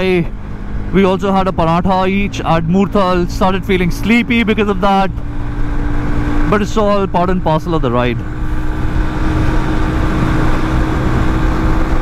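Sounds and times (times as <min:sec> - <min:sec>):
motorcycle engine drone: 0:00.0 - 0:12.0.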